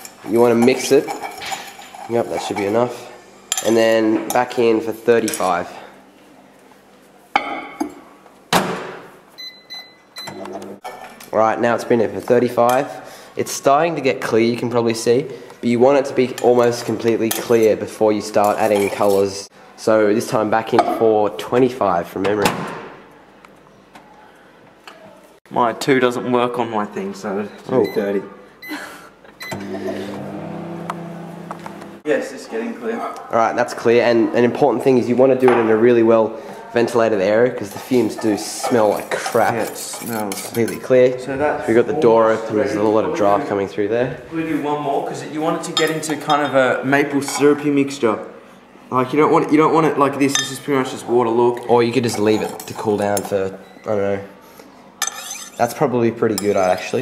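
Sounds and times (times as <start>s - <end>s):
microwave oven humming: 29.4s - 32.0s.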